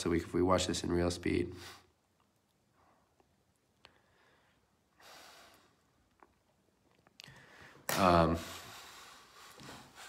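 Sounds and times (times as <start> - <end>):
man speaking: 0.0 - 1.6, 7.9 - 8.7
man breathing: 3.8 - 6.0, 7.2 - 10.0.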